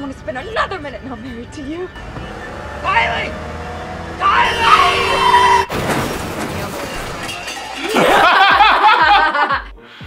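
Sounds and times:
car engine rumbling: 0.0 - 7.8.

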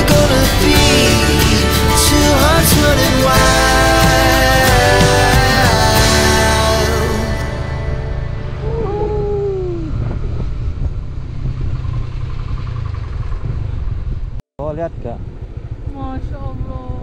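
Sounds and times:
motorcycle engine rumble: 0.0 - 17.0
short falling tone: 6.0 - 10.8
wind noise: 8.5 - 17.0.

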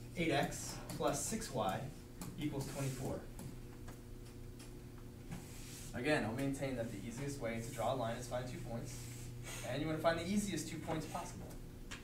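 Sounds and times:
steady low hum: 0.0 - 12.0
faint irregular ticks and taps: 0.4 - 2.4.

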